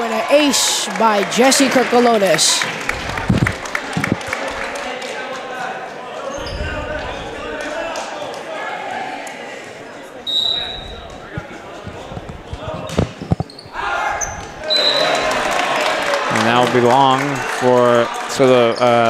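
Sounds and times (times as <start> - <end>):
crowd chatter: 0.0 - 19.0
referee whistle: 10.2 - 11.1, 14.6 - 15.3.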